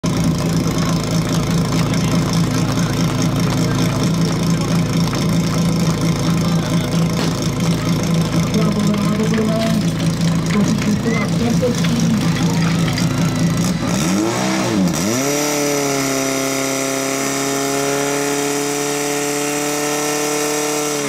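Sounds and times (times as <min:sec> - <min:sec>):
pump engine idling: 0:00.0 - 0:13.9.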